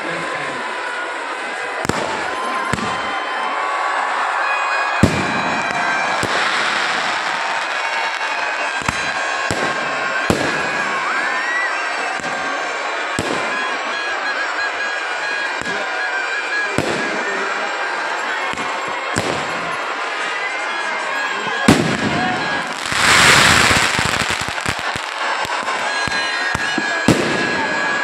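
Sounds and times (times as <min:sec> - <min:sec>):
firecrackers crackling and hiss: 0:00.0 - 0:03.4, 0:04.8 - 0:28.0
rising firework whistle: 0:00.2 - 0:28.0
fireworks bangs: 0:00.6 - 0:28.0.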